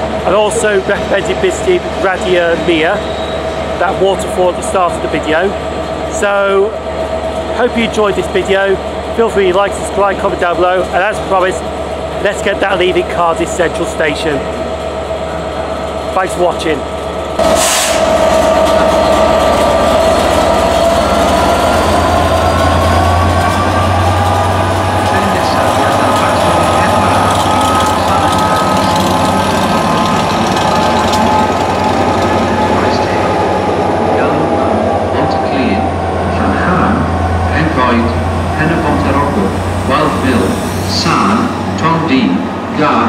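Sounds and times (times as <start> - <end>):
diesel locomotive engine drone: 0.0 - 43.0
wheels clicking on rails: 17.3 - 34.5.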